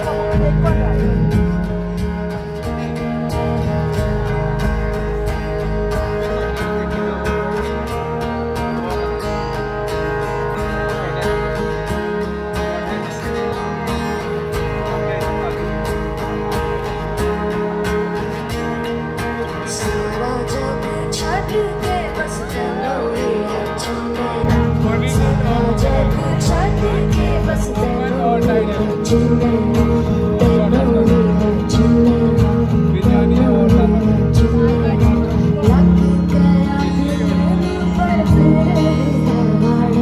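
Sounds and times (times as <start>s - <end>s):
acoustic guitars strumming: 0.0s - 40.0s
bass with held tones: 0.0s - 40.0s
woman singing: 19.7s - 40.0s.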